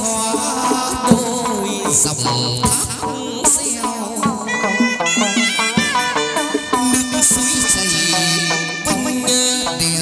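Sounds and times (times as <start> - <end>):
metal percussion strikes: 0.0 - 10.0
high buzzy melody: 1.0 - 10.0.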